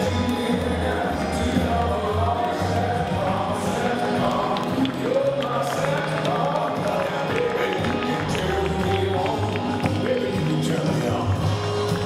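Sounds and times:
ballroom dance music with choir: 0.0 - 12.0.

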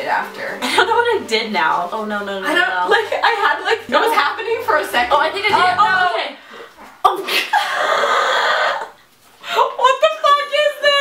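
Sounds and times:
women laughing: 7.1 - 9.0.

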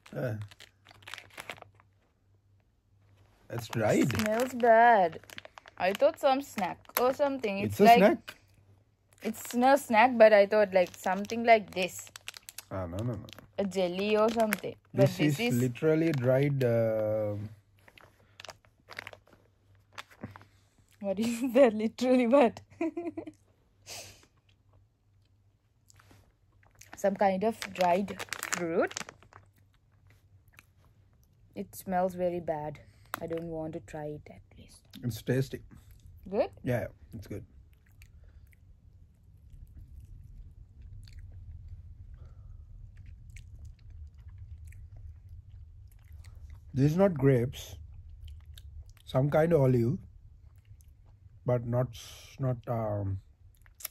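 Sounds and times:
plastic snack packet crinkling: 0.0 - 2.1, 3.5 - 8.3, 9.2 - 16.6, 17.8 - 20.6, 25.9 - 30.3
steady low hum: 1.8 - 53.9
chewing: 24.4 - 27.0, 28.2 - 31.4, 37.6 - 46.8, 47.8 - 49.1, 50.4 - 51.4.

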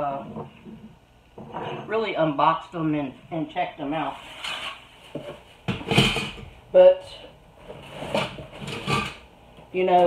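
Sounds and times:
rustling scrape: 4.0 - 5.6.

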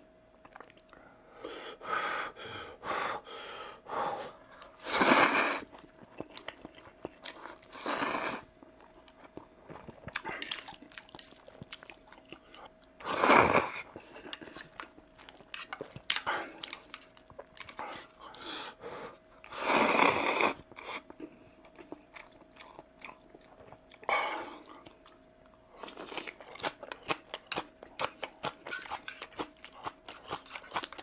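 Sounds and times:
wet chewing and smacking: 0.4 - 1.0, 5.7 - 7.7, 8.5 - 13.0, 13.8 - 18.5, 20.6 - 31.0
man slurping noodles: 4.8 - 5.7, 7.7 - 8.4, 13.0 - 13.8, 19.5 - 20.6.

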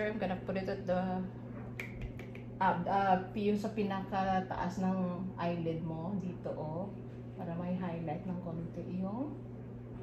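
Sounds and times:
woman speaking: 0.0 - 9.5.

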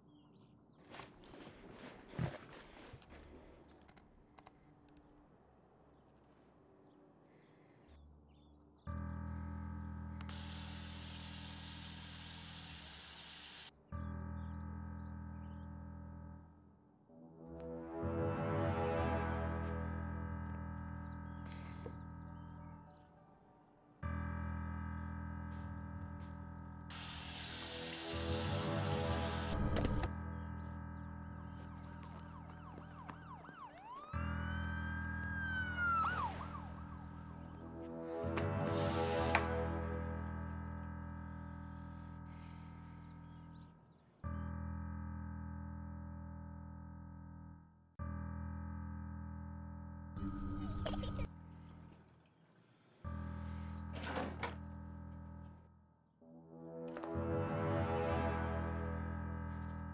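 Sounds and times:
low droning score: 14.0 - 52.1
police siren: 31.0 - 38.2.

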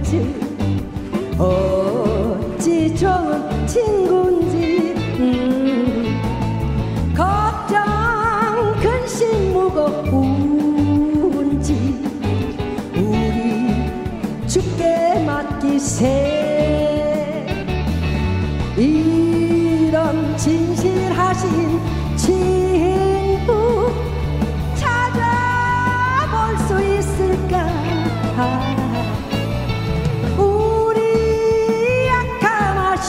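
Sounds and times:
upbeat backing track: 0.0 - 33.0
woman singing a hymn: 1.3 - 6.2, 7.2 - 12.2, 13.0 - 17.5, 18.8 - 24.2, 24.8 - 29.2, 30.4 - 33.0.

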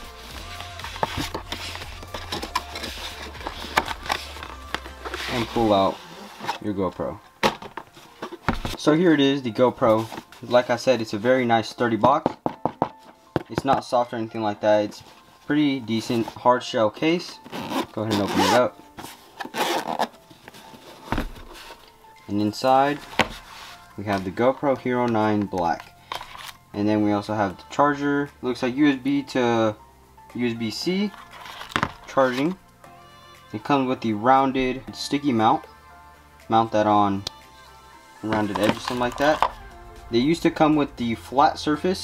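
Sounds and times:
background music with bass: 0.0 - 12.0, 21.1 - 42.0
zipper rasp: 0.5 - 6.6, 17.4 - 18.6, 19.4 - 20.1.

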